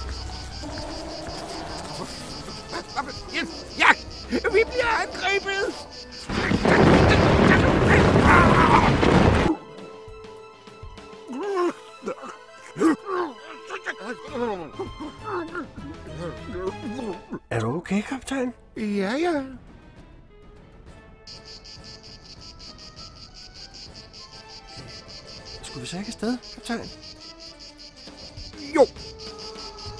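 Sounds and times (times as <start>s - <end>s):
crickets chirping: 0.0s - 9.3s, 21.3s - 29.9s
high cries: 0.0s - 9.5s, 21.3s - 29.9s
quiet music: 8.9s - 29.9s.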